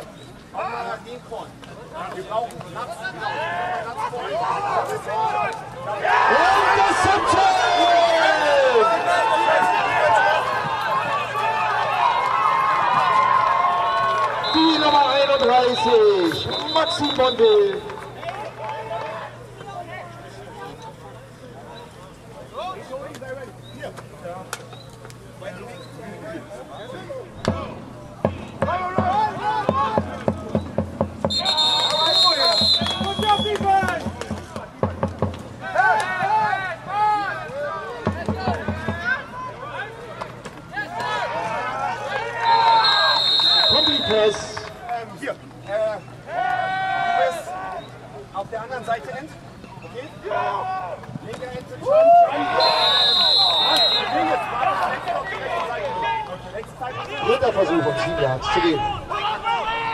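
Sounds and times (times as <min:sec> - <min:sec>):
people shouting and chattering: 0:00.0 - 0:59.9
referee's whistle: 0:14.4 - 0:17.8, 0:30.6 - 0:33.7, 0:42.4 - 0:44.6, 0:52.4 - 0:54.4.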